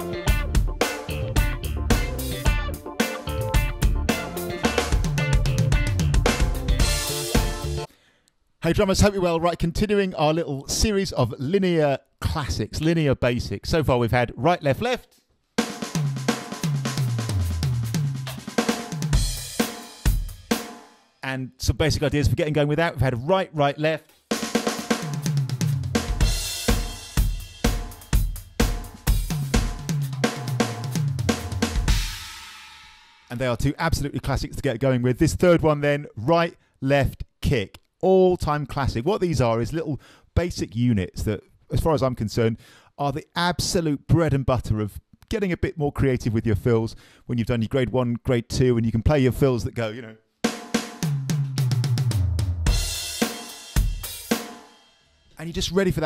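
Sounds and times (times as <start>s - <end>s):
electronic drum kit groove: 0.0s - 7.9s, 15.6s - 20.9s, 24.1s - 32.8s, 50.5s - 54.9s
crash cymbal with kick drum: 26.0s - 29.9s, 31.8s - 33.3s, 52.7s - 55.1s.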